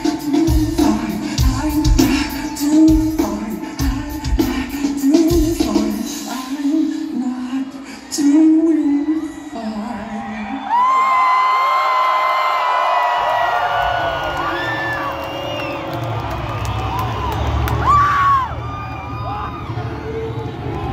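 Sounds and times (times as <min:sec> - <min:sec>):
crowd cheering and screaming: 0:00.0 - 0:20.9
loud whoop: 0:08.7 - 0:20.9.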